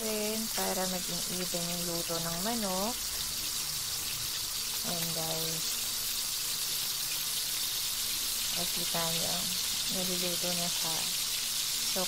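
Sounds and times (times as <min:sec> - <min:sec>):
chicken frying in hot oil: 0:00.0 - 0:12.0.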